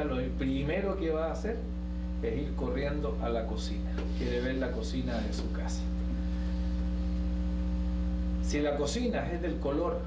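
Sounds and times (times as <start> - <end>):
electrical mains hum: 0.0 - 10.0
faint buzz: 0.0 - 10.0.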